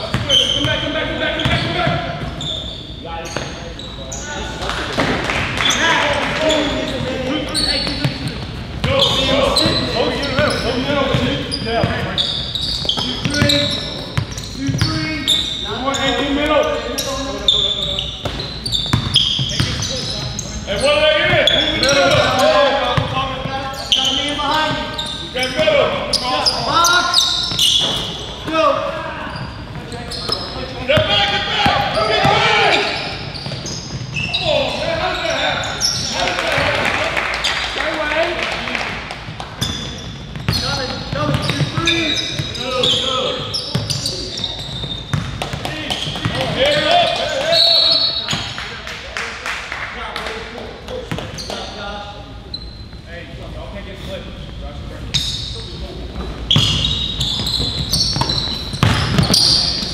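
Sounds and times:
basketball bouncing on hardwood: 57.6s - 59.4s.

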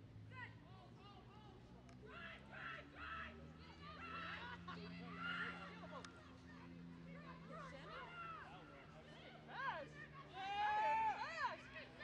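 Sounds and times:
voices shouting and calling: 2.0s - 12.0s.

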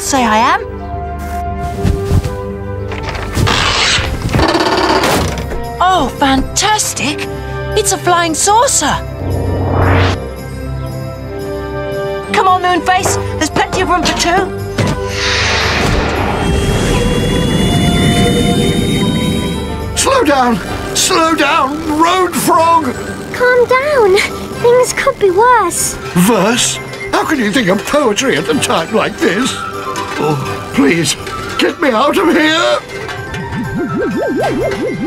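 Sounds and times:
background music: 0.0s - 35.0s
cartoon flying saucer whoosh: 9.2s - 10.3s.

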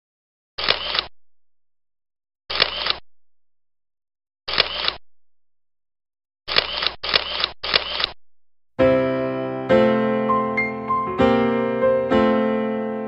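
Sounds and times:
camera shutter clicks: 0.6s - 1.1s, 2.5s - 3.0s, 4.5s - 5.0s, 6.5s - 8.2s.

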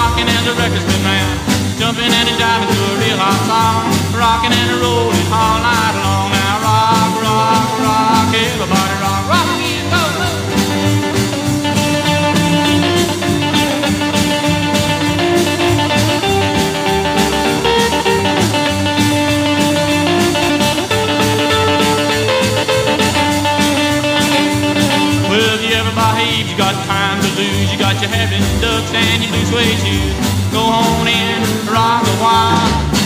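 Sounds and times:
rockabilly instrumental music: 0.0s - 33.0s.

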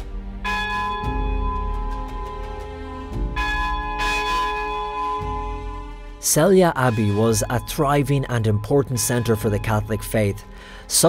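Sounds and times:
church bell ringing: 0.4s - 11.0s.

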